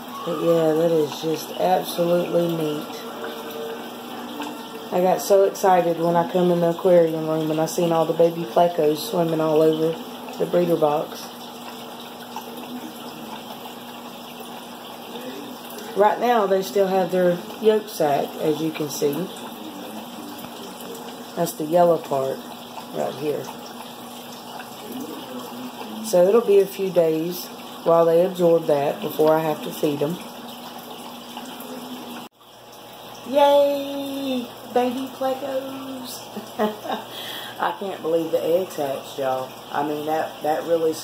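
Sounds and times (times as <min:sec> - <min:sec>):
aquarium water trickling: 0:00.0 - 0:41.0
faint steady hum: 0:00.0 - 0:41.0.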